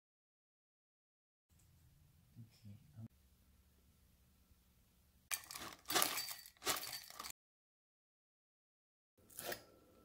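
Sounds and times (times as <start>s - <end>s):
spoon scraping in glass cup: 9.3s - 9.7s.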